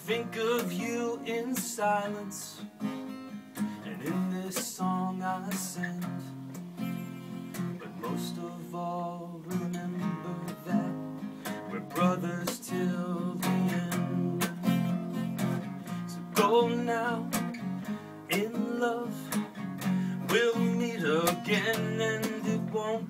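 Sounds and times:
man singing: 0:00.0 - 0:02.7, 0:03.7 - 0:06.6, 0:07.5 - 0:23.0
acoustic guitar strumming: 0:00.0 - 0:23.0.

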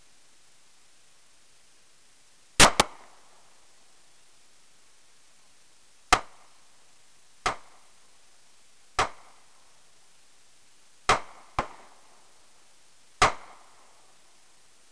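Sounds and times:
pistol shots: 0:02.6 - 0:03.1, 0:11.1 - 0:12.0, 0:13.2 - 0:13.7.

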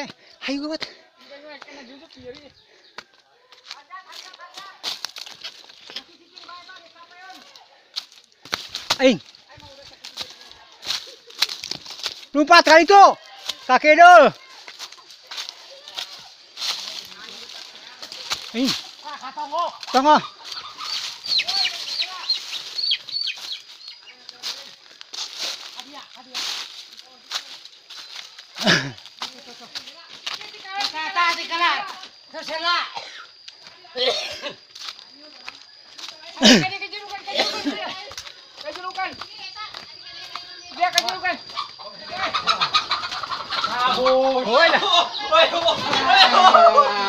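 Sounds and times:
high falling chirps: 0:14.3 - 0:33.9
chicken calling: 0:19.2 - 0:24.2, 0:41.4 - 0:47.0.

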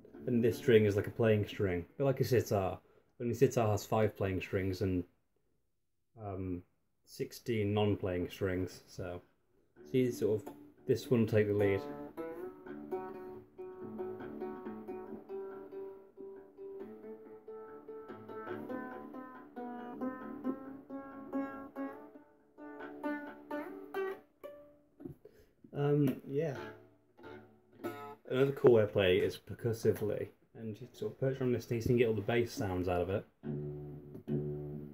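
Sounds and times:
plucked lute melody: 0:00.0 - 0:01.4, 0:09.8 - 0:25.2, 0:26.0 - 0:29.3, 0:31.9 - 0:34.9.

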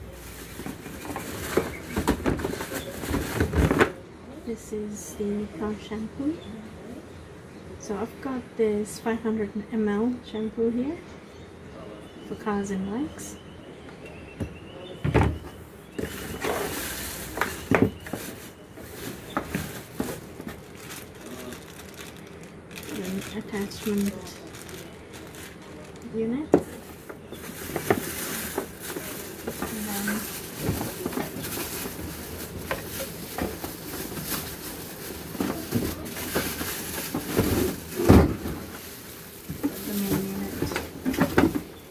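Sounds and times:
plastic wrapping rustling: 0:00.0 - 0:04.0, 0:15.9 - 0:41.9.

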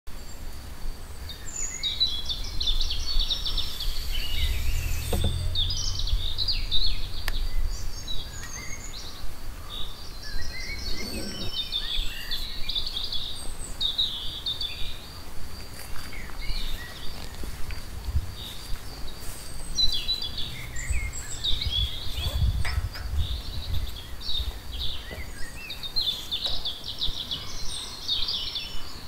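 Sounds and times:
small birds chirping and trilling: 0:00.2 - 0:29.0
low background rumble: 0:02.0 - 0:11.6, 0:17.0 - 0:23.9.

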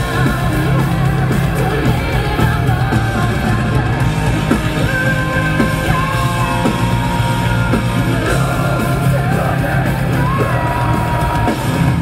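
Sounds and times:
metal band playing: 0:00.0 - 0:12.0
shouted vocals: 0:04.9 - 0:12.0.

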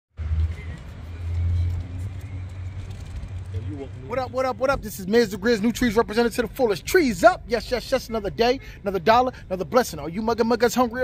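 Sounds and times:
car engine and road rumble: 0:00.2 - 0:11.0
man talking: 0:03.5 - 0:11.0.

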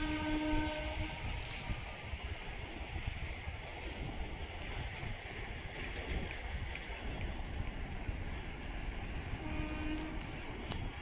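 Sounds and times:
train horn: 0:00.0 - 0:01.8, 0:09.3 - 0:10.6
wind rumble on microphone: 0:00.0 - 0:11.0.

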